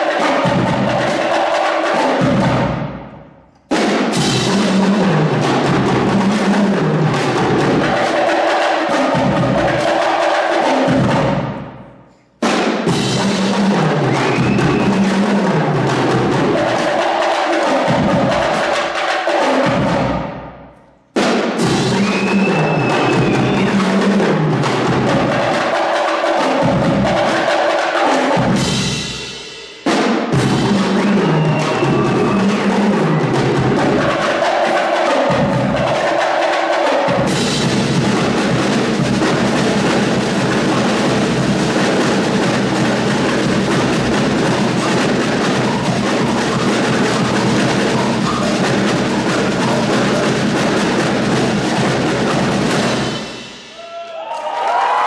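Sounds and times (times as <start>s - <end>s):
snare drums: 0.0s - 55.0s.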